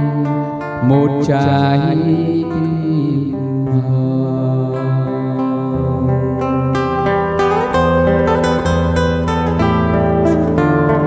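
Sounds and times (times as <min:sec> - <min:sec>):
acoustic guitar playing: 0:00.0 - 0:11.0.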